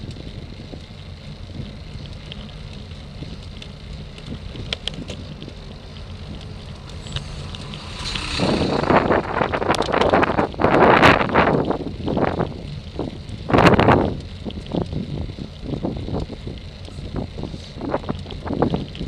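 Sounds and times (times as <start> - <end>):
bus passing: 0.0 - 13.4
road and tyre rumble: 0.0 - 19.0
wind buffeting microphone: 0.0 - 19.0.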